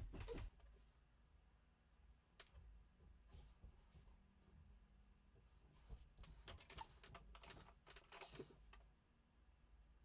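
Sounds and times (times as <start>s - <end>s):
small clicks and scratches: 5.8s - 8.9s.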